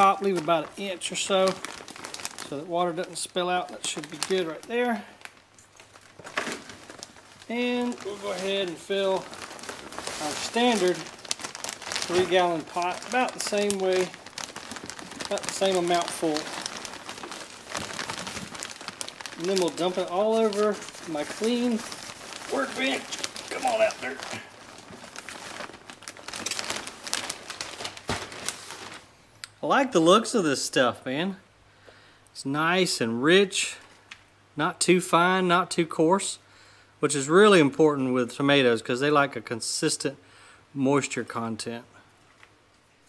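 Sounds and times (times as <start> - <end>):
plastic bag crinkling: 0.0 - 29.2
falling compost crackles: 0.0 - 29.3.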